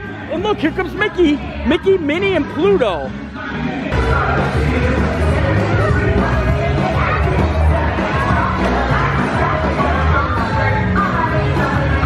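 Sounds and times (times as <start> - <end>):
crowd noise: 0.0 - 12.0
upbeat parade music with singing: 0.0 - 12.0.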